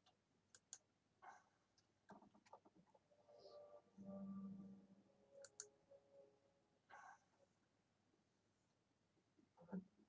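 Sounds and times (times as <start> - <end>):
faint sharp clicks: 0.0 - 0.8.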